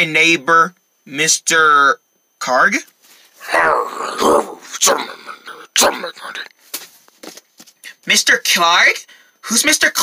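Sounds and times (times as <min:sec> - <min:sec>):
person speaking in character voice: 0:03.4 - 0:06.5.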